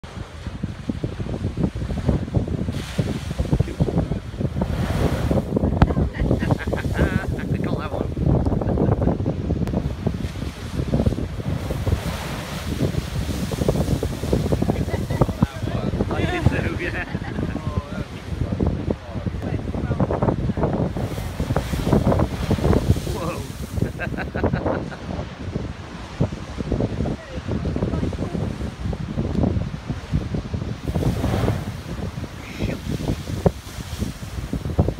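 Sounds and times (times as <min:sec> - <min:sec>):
storm sea waves breaking on rocks: 0:00.0 - 0:34.9
wind buffeting microphone: 0:00.0 - 0:34.9.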